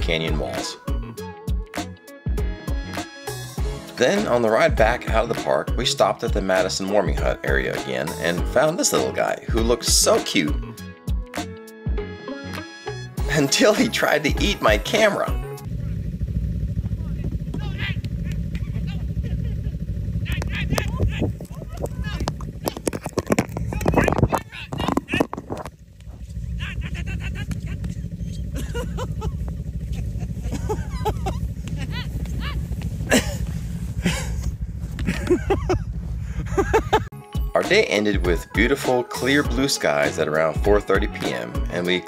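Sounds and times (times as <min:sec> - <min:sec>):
snowmobile engines idling: 0:15.6 - 0:22.8, 0:24.4 - 0:37.1.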